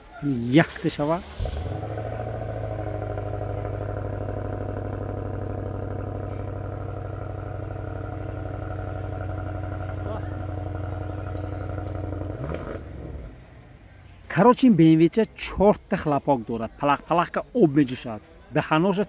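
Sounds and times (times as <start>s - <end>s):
car engine idling: 0.0s - 14.4s.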